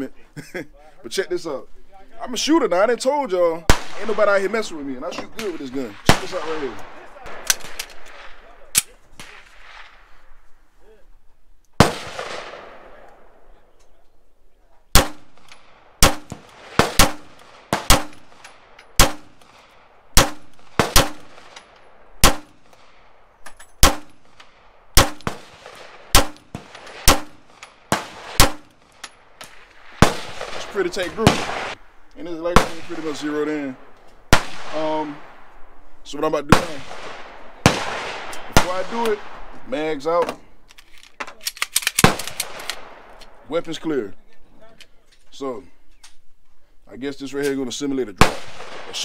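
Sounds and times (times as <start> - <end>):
pistol metallic clicks and clacks: 7.4 - 8.9, 40.2 - 43.4
handgun shots with ringing echo: 15.0 - 19.6, 20.2 - 22.6, 23.8 - 29.1.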